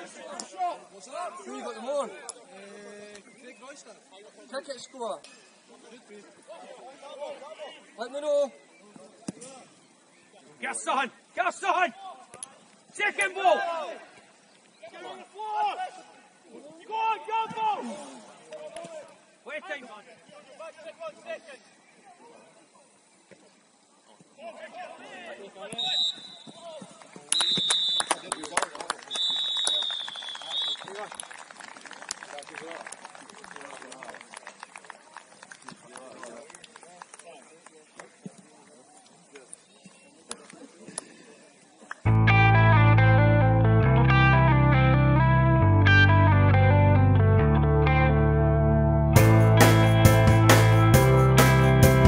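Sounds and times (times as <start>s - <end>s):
referee whistle blasts: 25.8s - 26.6s, 27.3s - 28.2s, 29.1s - 30.9s
loud music with guitar and bass: 42.1s - 52.0s.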